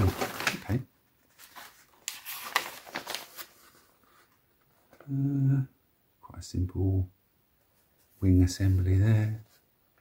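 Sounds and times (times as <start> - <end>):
paper pages rustling: 0.0 - 5.0.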